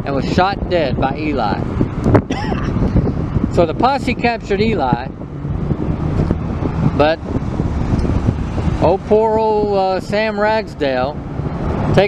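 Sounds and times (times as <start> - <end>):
car traffic rumble: 0.0 - 12.0.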